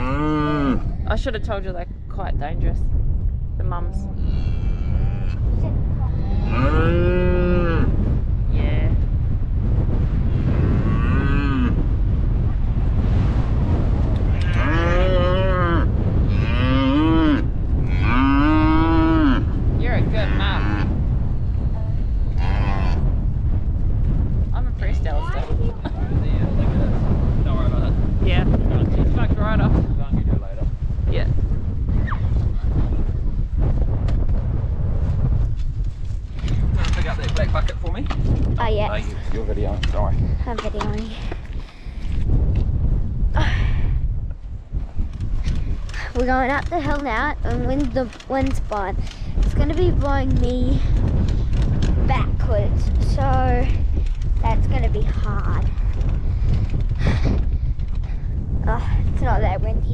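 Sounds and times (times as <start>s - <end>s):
cattle mooing: 0.0s - 1.0s, 4.0s - 5.4s, 6.2s - 7.9s, 10.6s - 11.8s, 14.3s - 19.5s, 20.2s - 20.9s, 22.3s - 23.0s
steady low rumble: 0.0s - 59.9s.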